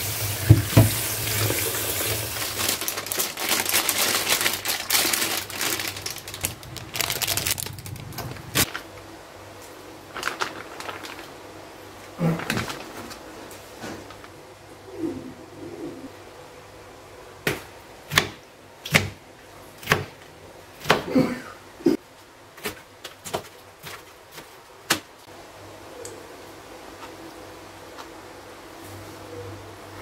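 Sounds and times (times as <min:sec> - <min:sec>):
tap water running into sink: 0:00.0 - 0:02.6
plastic bag rustling: 0:00.5 - 0:09.1, 0:09.9 - 0:14.4
dove cooing: 0:14.8 - 0:16.2.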